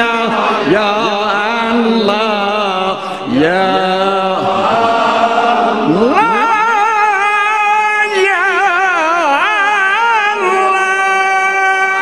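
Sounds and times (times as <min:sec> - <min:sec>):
man chanting with vibrato: 0:00.0 - 0:12.0.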